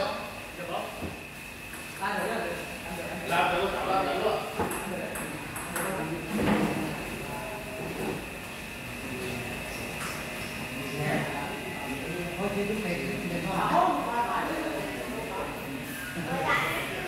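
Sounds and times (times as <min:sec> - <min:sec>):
men talking: 0:02.0 - 0:05.3.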